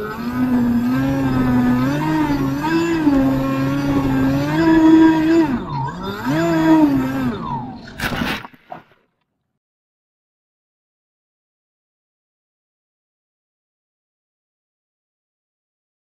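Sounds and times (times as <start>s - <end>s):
electric motor and propeller whining: 0.0s - 8.2s.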